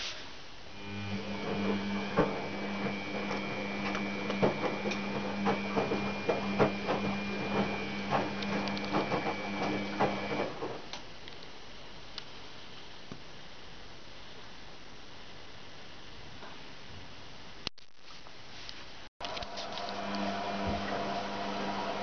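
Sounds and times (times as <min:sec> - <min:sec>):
washing machine motor whine: 0:00.7 - 0:10.9, 0:19.2 - 0:22.0.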